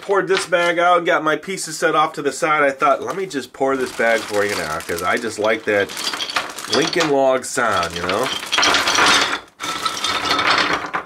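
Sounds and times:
wooden toy pieces clattering: 3.8s - 11.0s.

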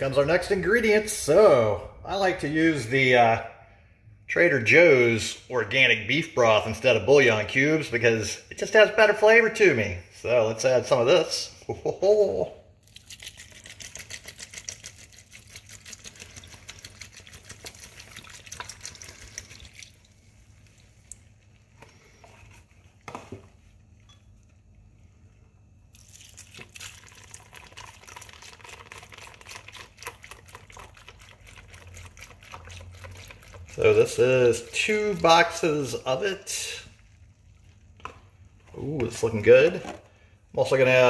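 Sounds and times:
broth pouring into pot: 12.8s - 22.4s, 25.8s - 38.8s.

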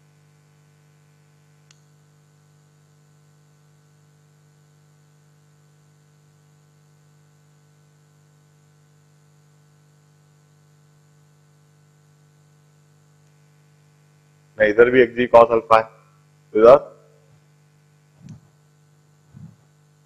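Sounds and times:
faint electrical hum: 0.0s - 20.0s.

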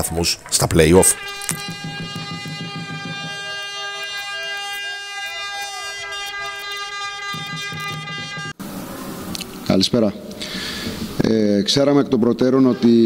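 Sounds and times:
steady horn-like tone: 0.4s - 9.8s.

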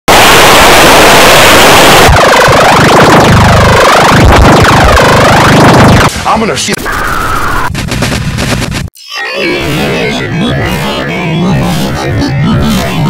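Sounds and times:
warbling electronic swoops: 9.0s - 13.0s.

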